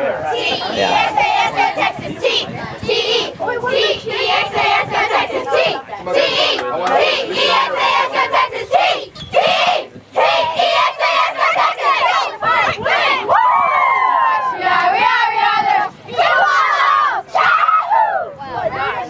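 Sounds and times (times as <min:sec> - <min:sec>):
girls chanting and shouting: 0:00.2 - 0:06.6, 0:07.2 - 0:19.0
high whoops and cheers: 0:13.2 - 0:14.6, 0:17.4 - 0:18.4.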